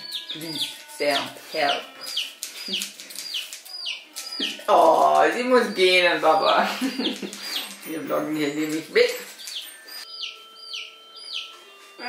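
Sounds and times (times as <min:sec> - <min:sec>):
bird chirping: 0:00.0 - 0:11.8.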